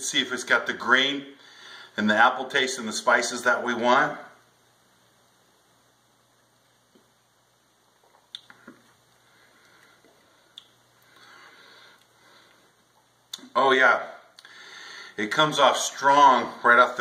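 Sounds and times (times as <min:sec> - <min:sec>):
soft breathy sound: 0:14.4 - 0:15.2.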